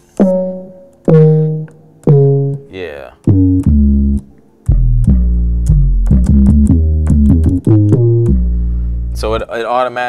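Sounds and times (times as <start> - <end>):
deep bass notes: 0.0 - 9.5.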